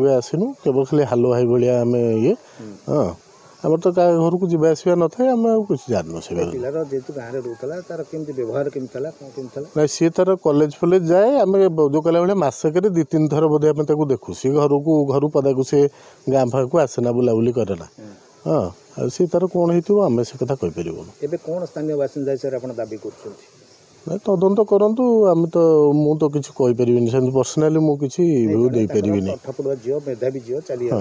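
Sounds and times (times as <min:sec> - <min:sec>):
faint steady hiss: 0:00.0 - 0:31.0
man speaking: 0:00.0 - 0:31.0.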